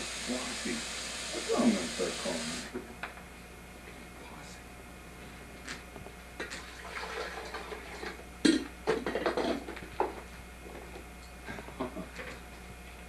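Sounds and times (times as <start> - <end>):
steady low hum: 0.0 - 6.5.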